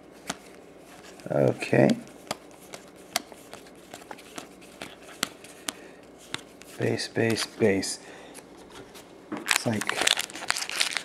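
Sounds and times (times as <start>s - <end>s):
cards flicked with papery snaps: 0.2s - 0.6s, 1.2s - 7.6s.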